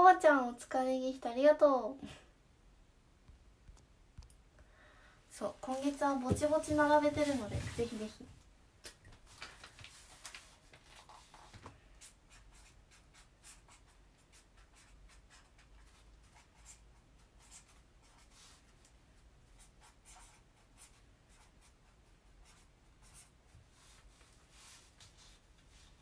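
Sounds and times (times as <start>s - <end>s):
pen scratching on paper: 11.0s - 18.7s, 19.6s - 24.1s.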